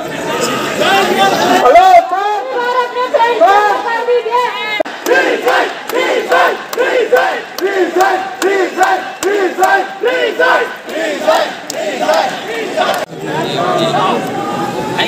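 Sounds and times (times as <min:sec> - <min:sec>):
crowd chanting slogans: 0:00.4 - 0:14.5.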